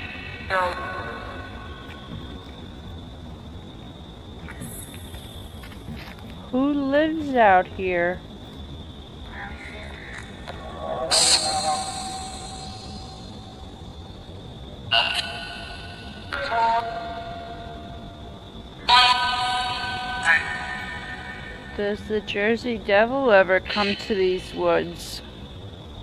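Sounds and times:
faint steady high tone: 0:09.3 - 0:14.0.

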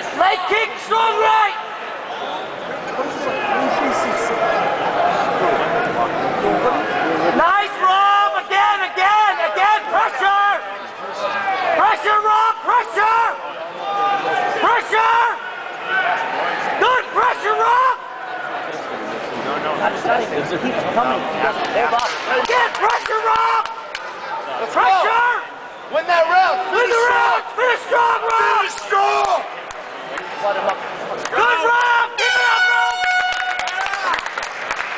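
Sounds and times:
spectators yelling: 0:00.0 - 0:18.8, 0:21.8 - 0:34.4
arena background noise: 0:00.0 - 0:34.9
crowd shouting: 0:06.6 - 0:18.7, 0:22.1 - 0:30.6, 0:31.3 - 0:34.2
electronic horn: 0:32.2 - 0:33.7.

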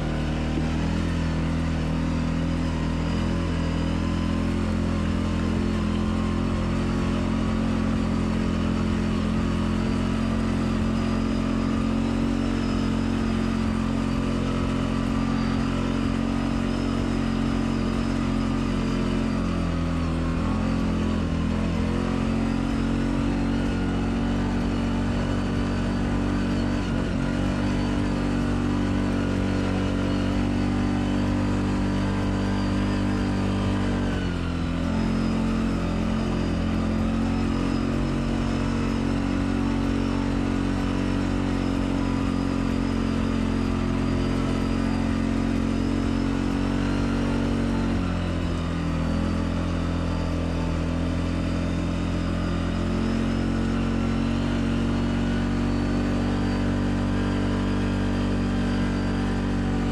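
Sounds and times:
atv engine running under load: 0:00.0 - 0:59.9.

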